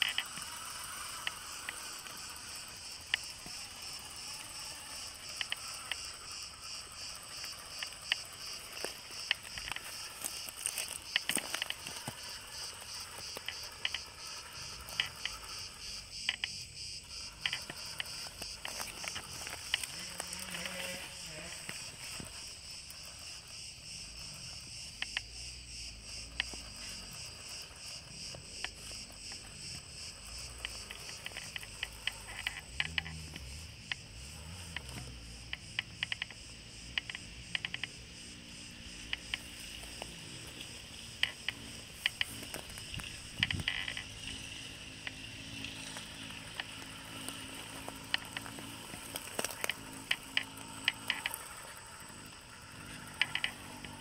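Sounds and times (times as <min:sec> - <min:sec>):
insects chirping: 0:00.0 - 0:54.0.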